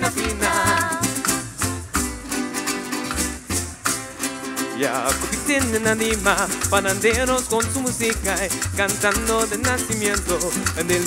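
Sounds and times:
maracas shaking: 0:00.0 - 0:11.0
strummed guitars: 0:00.0 - 0:11.0.

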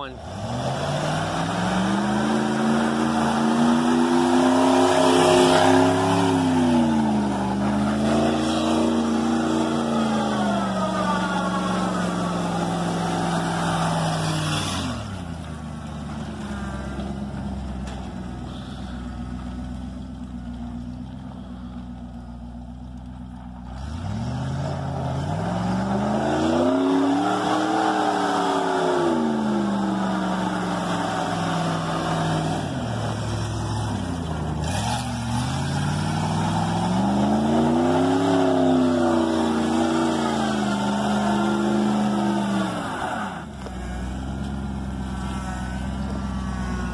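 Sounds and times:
truck engine revving: 0:00.0 - 0:21.8, 0:23.6 - 0:46.9.

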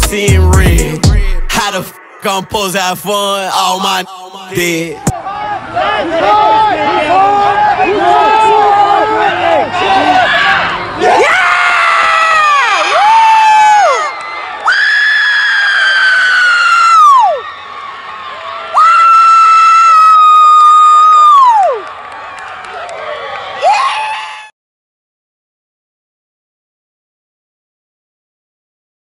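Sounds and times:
crowd cheering: 0:03.6 - 0:24.5.

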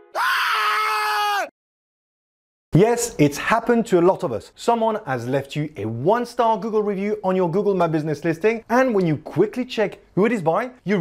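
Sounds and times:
person screaming: 0:00.1 - 0:01.6.

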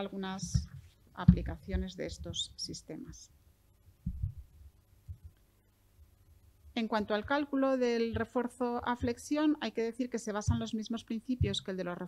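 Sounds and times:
soft low thuds on desk: 0:00.4 - 0:02.5, 0:04.0 - 0:04.5, 0:10.4 - 0:10.8, 0:11.4 - 0:11.7.

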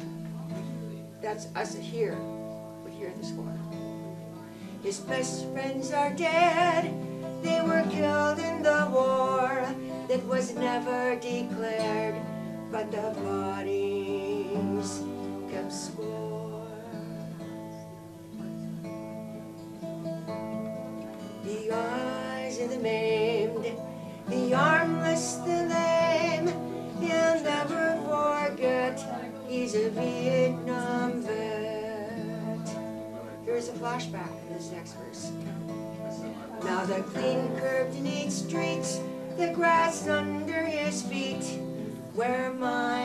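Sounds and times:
acoustic guitar strumming chords: 0:00.0 - 0:43.0
woman singing folk song: 0:00.0 - 0:43.0.

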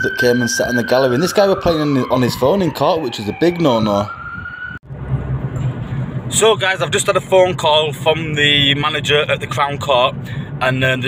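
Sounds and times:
siren rising tone: 0:00.0 - 0:06.2
car cabin drone while driving: 0:04.8 - 0:11.0.

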